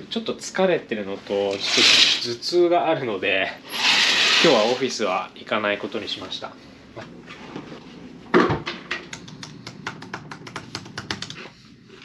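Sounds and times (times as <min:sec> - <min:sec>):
laptop keyboard typing: 0:09.2 - 0:11.4.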